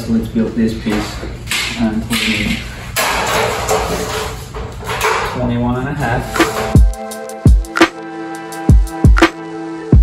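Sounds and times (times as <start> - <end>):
sheet metal scraping and rustling: 0.7 - 6.9.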